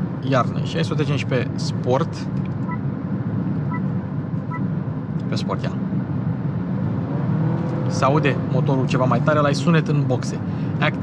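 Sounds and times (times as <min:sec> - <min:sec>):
road and tyre rumble: 0:00.0 - 0:11.0.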